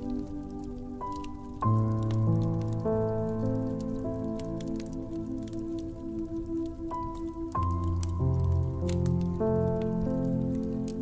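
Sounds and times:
soft slow piano: 0:00.0 - 0:11.0
wood fire crackling: 0:00.0 - 0:11.0.

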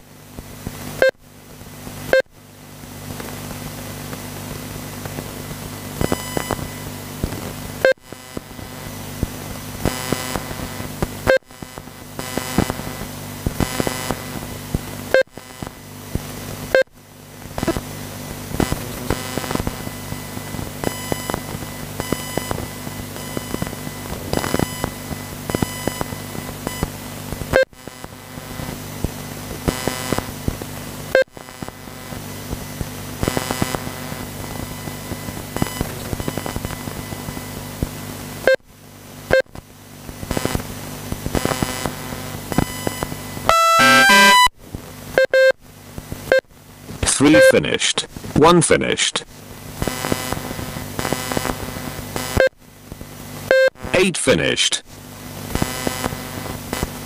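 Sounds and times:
steady low hum: 0:00.0 - 0:57.0
stepped electronic tones: 0:06.0 - 0:06.9, 0:17.6 - 0:17.9, 0:18.5 - 0:26.9, 0:33.2 - 0:37.6, 0:41.3 - 0:44.5, 0:46.3 - 0:52.6, 0:53.5 - 0:54.8
electronic timing beeps: 0:43.5 - 0:44.5.

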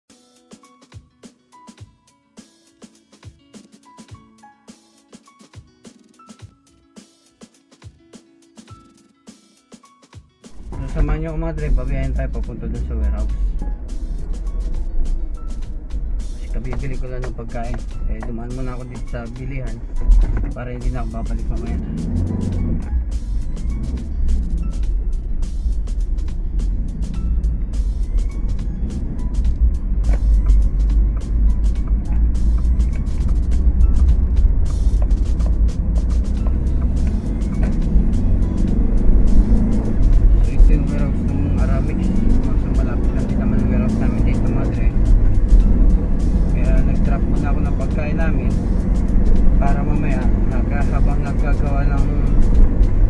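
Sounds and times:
music with vocals: 0:00.1 - 0:53.0
road and engine rumble: 0:10.5 - 0:53.0.

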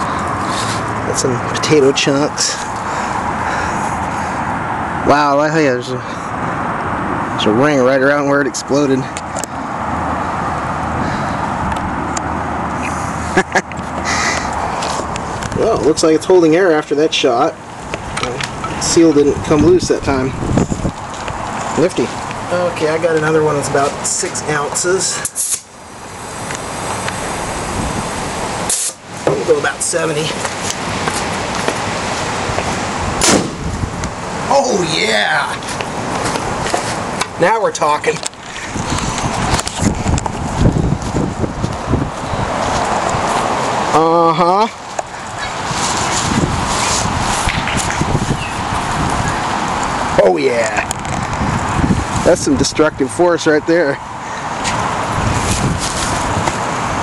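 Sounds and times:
wind on microphone: 0:18.0 - 0:22.5, 0:27.3 - 0:28.4, 0:32.4 - 0:34.2, 0:38.3 - 0:43.9, 0:45.2 - 0:53.2, 0:54.6 - 0:57.0
potato gun blast: 0:33.2 - 0:33.6.

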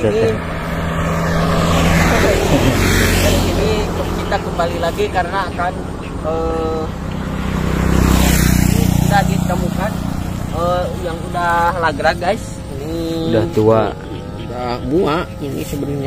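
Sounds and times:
motor scooters passing: 0:00.0 - 0:16.0.

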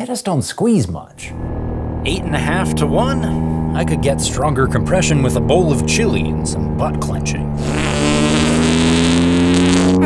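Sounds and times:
motorcycle engine running: 0:01.2 - 0:10.0.

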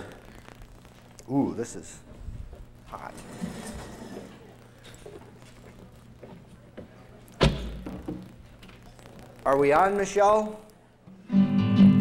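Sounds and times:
steady low hum: 0:00.0 - 0:11.4.

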